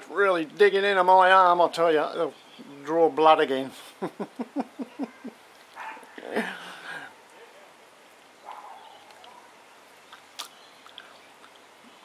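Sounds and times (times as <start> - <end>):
man laughing: 3.8 - 5.4, 6.2 - 7.1.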